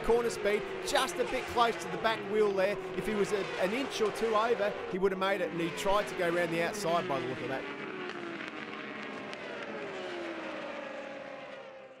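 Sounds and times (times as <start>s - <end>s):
racing motorcycle engines: 0.0s - 12.0s.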